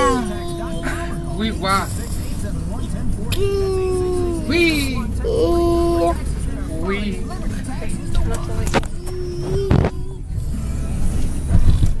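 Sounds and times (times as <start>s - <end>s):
car road rumble: 0.0s - 12.0s.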